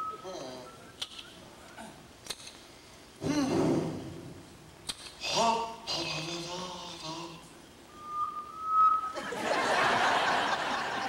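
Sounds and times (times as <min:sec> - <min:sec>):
person's voice: 0:05.2 - 0:07.5.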